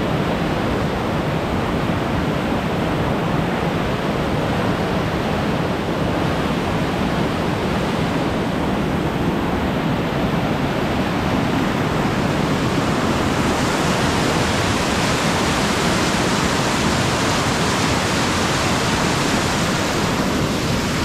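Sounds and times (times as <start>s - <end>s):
whitewater stream rushing: 0.0s - 21.0s.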